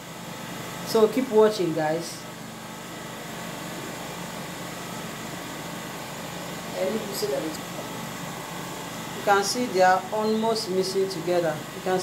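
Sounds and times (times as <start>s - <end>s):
machinery humming and hissing: 0.0s - 12.0s.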